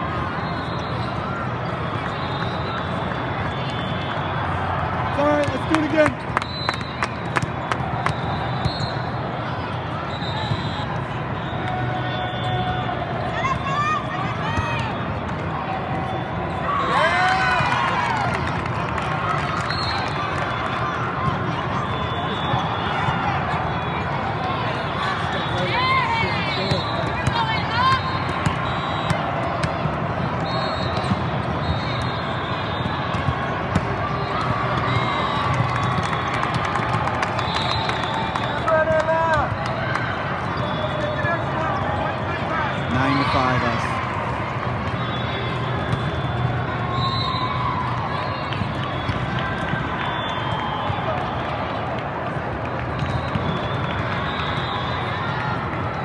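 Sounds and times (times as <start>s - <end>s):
hubbub of voices and calls: 0.0s - 56.0s
balls being hit and bounced: 26.6s - 32.1s, 32.7s - 37.0s, 44.6s - 46.7s.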